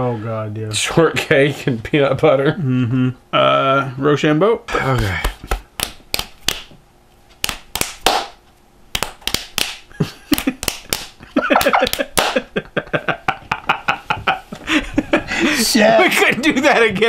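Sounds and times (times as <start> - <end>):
fists smacking into palms: 4.9 - 12.5
people laughing: 9.9 - 10.6, 11.2 - 17.0.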